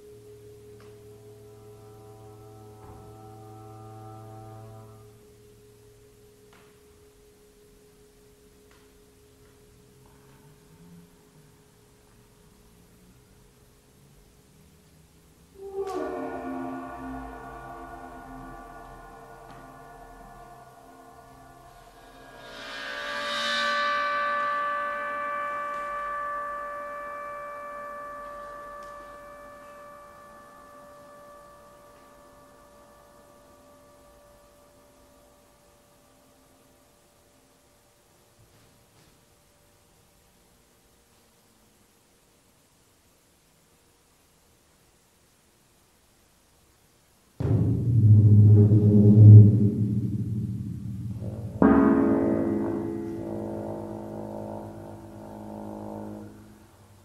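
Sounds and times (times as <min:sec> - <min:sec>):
steady pure high tone: 0:00.0 - 0:12.5, 0:15.5 - 0:37.9, 0:47.4 - 0:57.0
low trombone note: 0:15.6 - 0:21.6, 0:47.4 - 0:56.8
large gong ringing: 0:15.6 - 0:22.6, 0:47.4 - 0:56.6.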